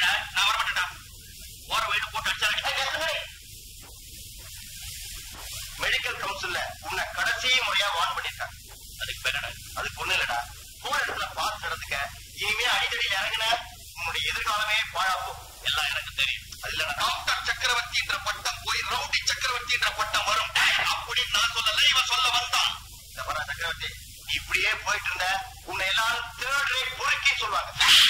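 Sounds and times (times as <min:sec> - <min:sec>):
men talking: 0:01.7 - 0:03.3, 0:05.8 - 0:28.0.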